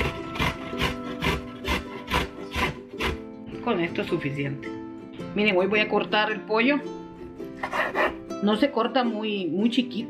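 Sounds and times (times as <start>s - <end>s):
ginger rasping on a metal grater: 0.0s - 3.2s
background music: 0.0s - 10.0s.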